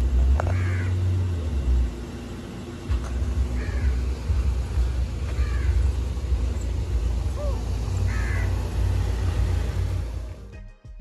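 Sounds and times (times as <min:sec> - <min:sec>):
car rumble: 0:00.0 - 0:10.6.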